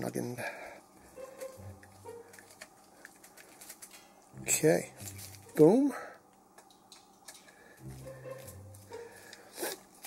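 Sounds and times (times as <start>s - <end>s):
screwdriver ticks and creaks: 1.2s - 4.2s.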